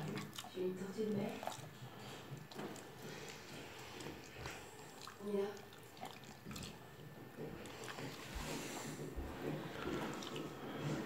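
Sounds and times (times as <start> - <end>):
puppy licking and chewing: 0.0 - 10.5.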